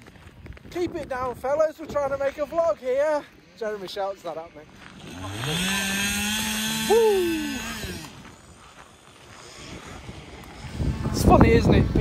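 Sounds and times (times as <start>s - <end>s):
chainsaw running at high revs: 4.6s - 12.0s
person shouting: 6.8s - 7.8s.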